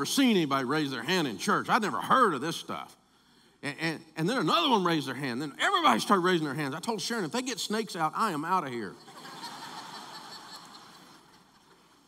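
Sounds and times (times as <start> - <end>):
crowd laughter: 8.9 - 12.0.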